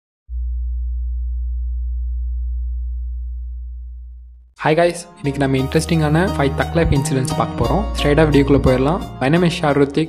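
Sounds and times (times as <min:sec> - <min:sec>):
deep electronic bass tone: 0:00.3 - 0:04.6.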